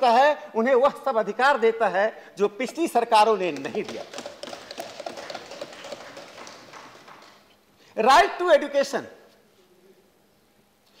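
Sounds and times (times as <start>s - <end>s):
thumping on wooden desks: 3.4s - 7.4s.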